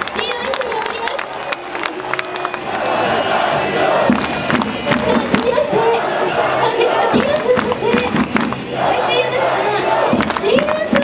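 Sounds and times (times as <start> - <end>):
stadium crowd cheering: 0.0 - 11.0
voices close by: 4.8 - 11.0.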